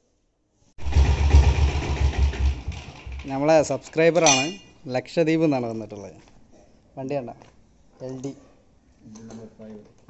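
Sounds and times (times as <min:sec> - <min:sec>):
motorcycle engine idling: 0:00.8 - 0:03.3.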